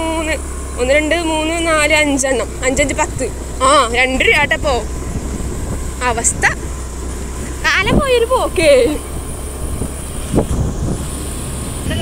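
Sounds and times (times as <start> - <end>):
motor scooter engine rumble: 0.0 - 12.0.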